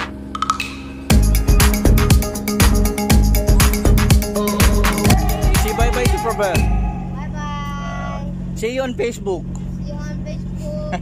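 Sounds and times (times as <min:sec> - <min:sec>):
ship engines droning: 0:00.0 - 0:10.6.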